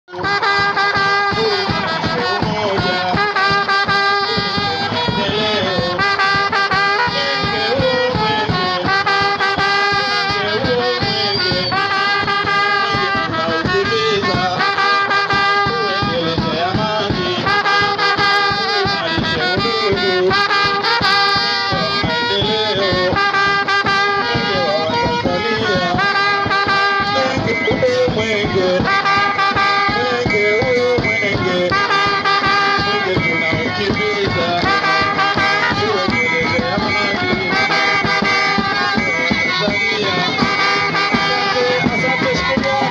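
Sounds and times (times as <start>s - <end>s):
steady drumbeat: 0.1s - 42.9s
trumpets and trombones: 0.1s - 42.9s.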